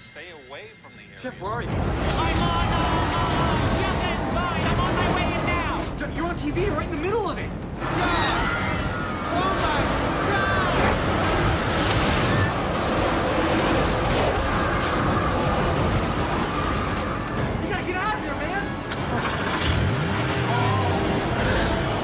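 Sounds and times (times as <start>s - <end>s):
dramatic music: 0.0s - 22.0s
roar of wind and flying debris: 7.8s - 17.6s.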